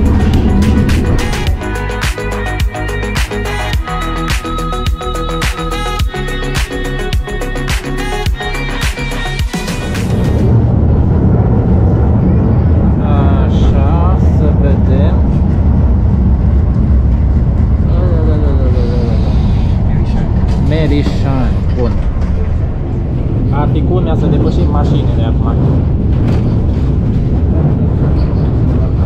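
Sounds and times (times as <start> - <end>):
indistinct voices: 0.0 - 29.0
railcar low rumble: 0.0 - 29.0.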